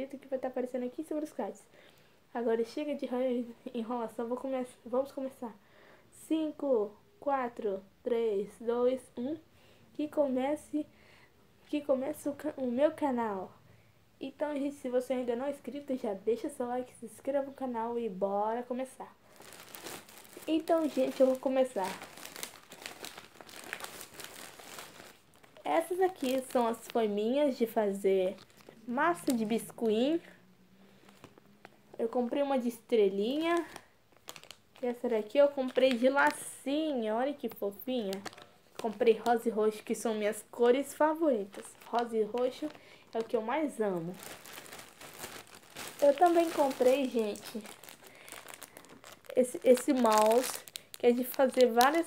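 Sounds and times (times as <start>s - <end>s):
plastic bag crinkling: 19.2s - 30.2s, 31.0s - 32.2s, 33.1s - 36.6s, 37.4s - 52.0s.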